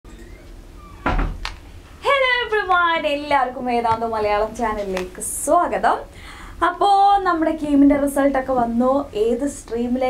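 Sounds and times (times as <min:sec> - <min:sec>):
faint low hum: 0:00.1 - 0:10.0.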